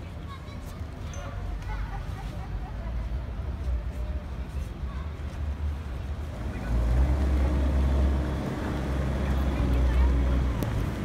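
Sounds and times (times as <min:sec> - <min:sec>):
city street low rumble: 0:00.0 - 0:11.0.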